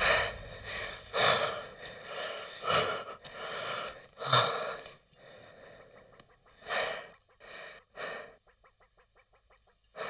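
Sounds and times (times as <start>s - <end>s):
man breathing heavily: 0.0s - 10.0s.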